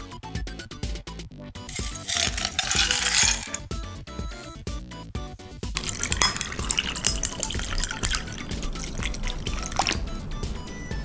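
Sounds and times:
ice cubes clinking in glass: 1.7s - 3.6s, 5.8s - 10.1s.

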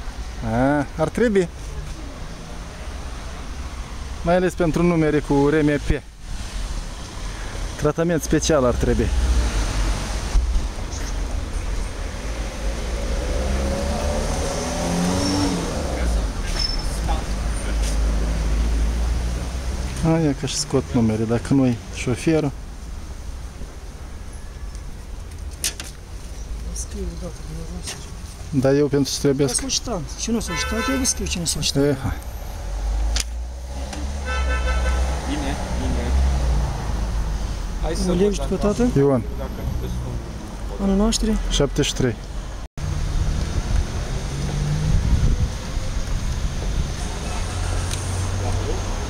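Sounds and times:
street traffic: 0.0s - 49.0s
high-pitched car horn: 30.4s - 31.4s, 34.2s - 35.2s.

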